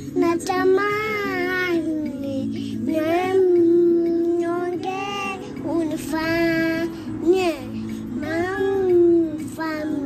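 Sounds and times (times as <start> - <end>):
music: 0.0 - 10.0
toddler singing: 0.2 - 10.0.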